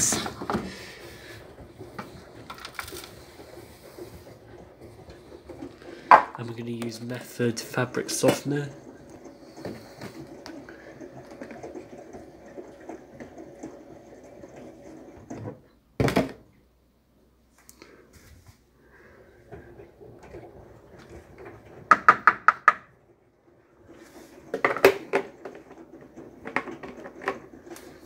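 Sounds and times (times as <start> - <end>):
bottle handled on countertop: 6.1 - 6.4.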